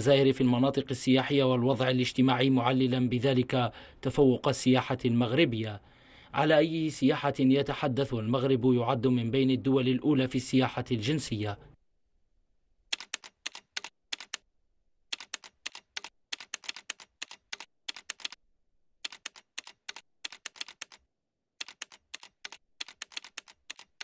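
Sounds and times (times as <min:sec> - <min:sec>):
rapid keyboard key clicks: 0:12.9 - 0:14.4, 0:15.1 - 0:18.4, 0:19.0 - 0:21.0, 0:21.6 - 0:24.0.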